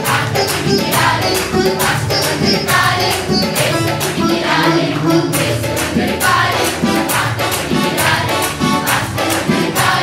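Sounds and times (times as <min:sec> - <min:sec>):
children and adults singing: 0:00.0 - 0:10.0.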